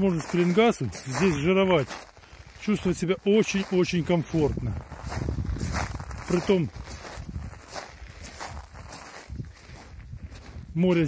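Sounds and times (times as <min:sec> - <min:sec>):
footsteps on shells and seaweed: 0:00.0 - 0:11.0.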